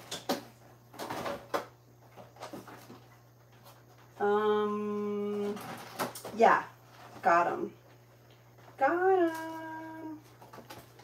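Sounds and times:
rustling and handling: 0:05.0 - 0:11.0.

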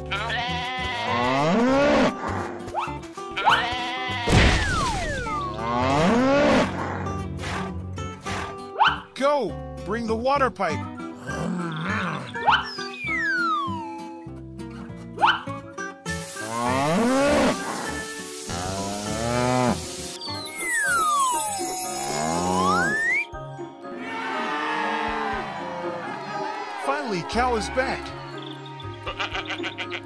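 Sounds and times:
cartoon cow mooing: 0:05.6 - 0:06.7, 0:11.3 - 0:12.4, 0:16.4 - 0:19.8, 0:22.0 - 0:23.0
light children's music: 0:07.2 - 0:30.0
water spraying hiss: 0:16.1 - 0:23.0.

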